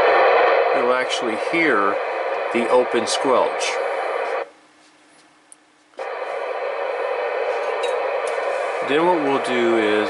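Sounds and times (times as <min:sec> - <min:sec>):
radio static hiss: 0:00.0 - 0:04.6, 0:06.0 - 0:10.0.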